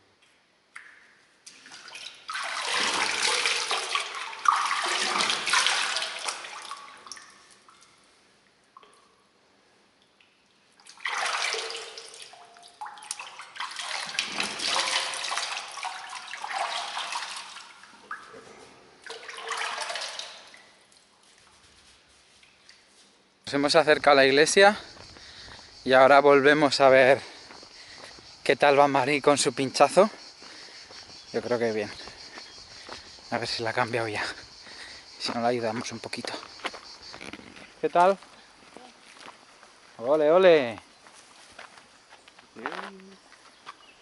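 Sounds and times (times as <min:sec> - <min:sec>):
hands splashing water: 0:00.7 - 0:08.0, 0:10.2 - 0:23.0.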